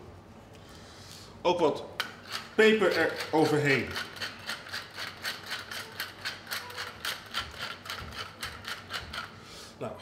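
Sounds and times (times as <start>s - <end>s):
pepper mill grinding: 2.0s - 9.3s.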